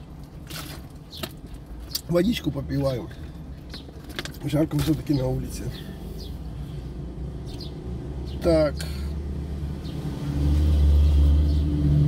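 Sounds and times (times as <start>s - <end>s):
low rumble inside a car: 0.0s - 10.1s
high bird chirps: 7.4s - 8.5s.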